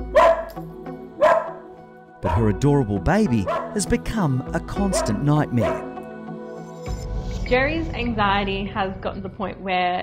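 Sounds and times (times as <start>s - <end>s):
background music: 0.0s - 10.0s
small dog barking: 0.1s - 0.5s, 1.2s - 1.6s, 3.4s - 3.8s, 5.0s - 5.9s.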